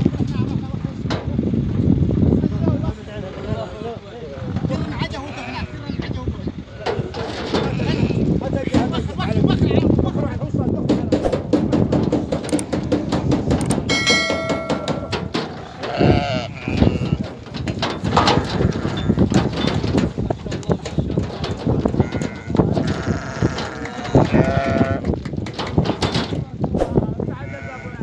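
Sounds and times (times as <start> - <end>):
men's voices: 0.0 - 28.0
sheep bleating: 5.1 - 5.8, 6.9 - 8.4, 15.5 - 17.2, 18.3 - 19.2, 21.9 - 25.1, 27.4 - 28.0
clatter of knocks and hooves: 6.8 - 9.5, 10.7 - 26.7.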